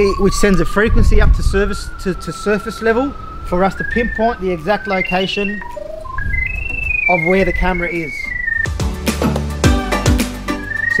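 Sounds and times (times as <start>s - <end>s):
pipe locator tone sliding lower: 0.0s - 8.7s
music with deep bass: 8.3s - 11.0s.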